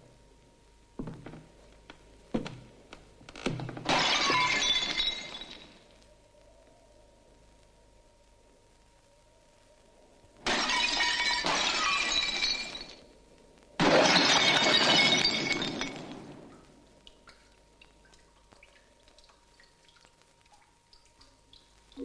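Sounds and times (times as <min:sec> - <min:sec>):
glass smashing: 0:03.8 - 0:05.8, 0:10.4 - 0:13.1, 0:13.8 - 0:16.5
glass pieces tinkling: 0:03.9 - 0:05.8, 0:10.5 - 0:13.1, 0:13.8 - 0:16.4.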